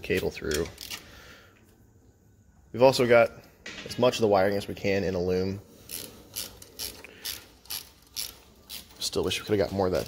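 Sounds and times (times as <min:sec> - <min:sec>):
ratchet strokes: 0:05.8 - 0:09.2.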